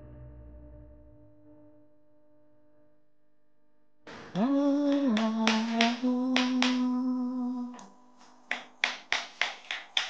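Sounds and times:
person humming: 0:04.1 - 0:07.9
fingers snapping: 0:04.9 - 0:07.0, 0:08.5 - 0:10.0.

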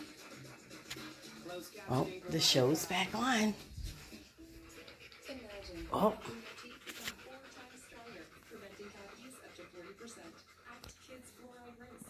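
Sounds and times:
dog panting: 0:00.0 - 0:12.0
television speech: 0:00.0 - 0:12.0.

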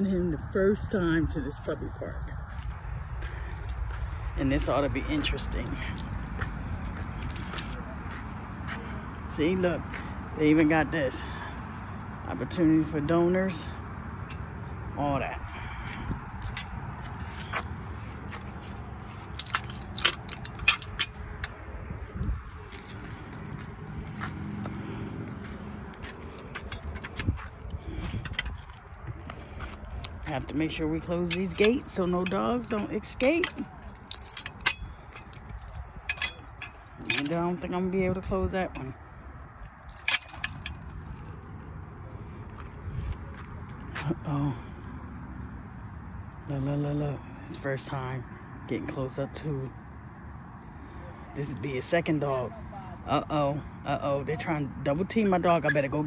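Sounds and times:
low outdoor rumble: 0:00.0 - 0:56.0
chain-link gate clicks and knocks: 0:19.2 - 0:21.8, 0:31.0 - 0:39.0, 0:39.8 - 0:41.2.

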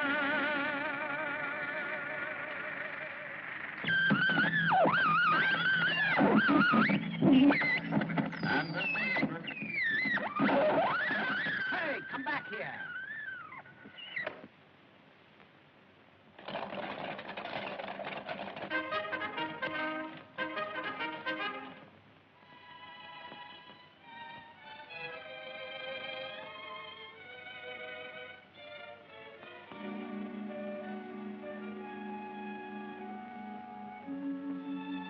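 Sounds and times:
shrill sliding squeals: 0:00.0 - 0:14.4
film music: 0:18.5 - 0:35.0
warbling musical chord: 0:29.7 - 0:34.8.

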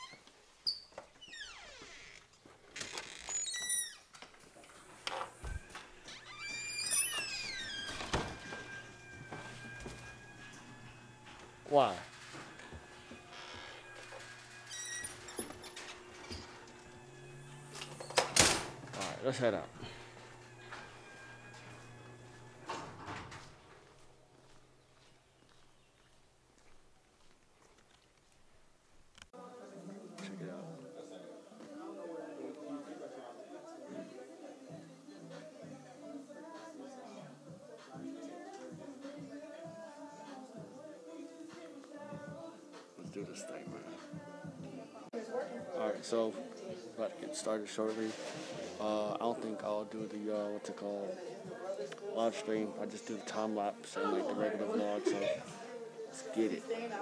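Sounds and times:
door hinges squeaking: 0:00.0 - 0:23.9.

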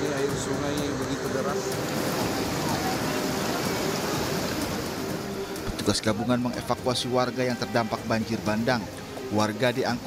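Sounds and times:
steady rain: 0:00.0 - 0:06.6.

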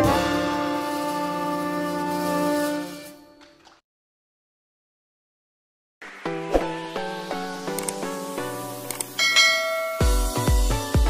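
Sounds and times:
small click: 0:07.7 - 0:08.0, 0:08.9 - 0:09.2
bright bell chime: 0:09.2 - 0:10.4.

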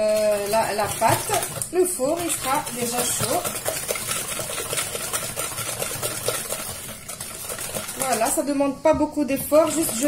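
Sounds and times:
whisk beating in plastic bowl: 0:00.0 - 0:10.0.

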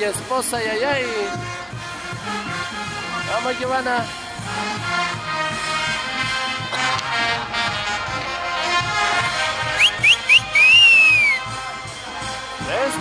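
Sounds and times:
band music with brass: 0:00.0 - 0:13.0
long rising and falling whistle: 0:09.8 - 0:11.5
short upward whistles: 0:09.8 - 0:11.5.

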